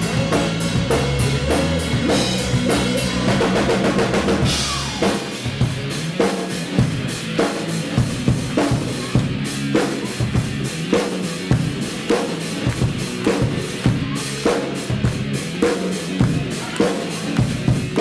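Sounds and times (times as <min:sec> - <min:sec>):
drum kit beat: 0:00.0 - 0:18.0
hard rock band playing: 0:00.0 - 0:18.0.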